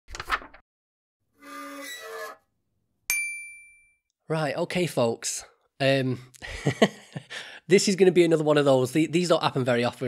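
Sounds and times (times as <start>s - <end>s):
bright ringing ding: 3.1s - 4.0s.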